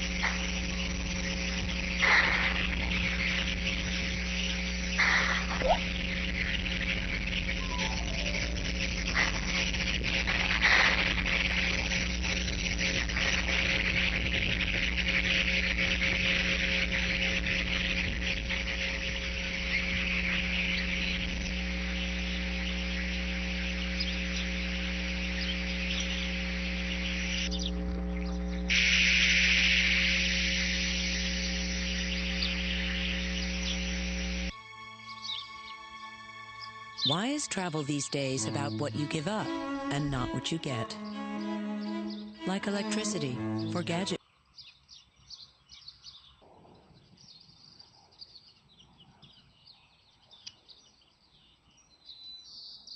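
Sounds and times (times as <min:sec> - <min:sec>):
steady electrical hum: 0:00.0 - 0:34.8
constant high hiss: 0:00.0 - 0:39.9.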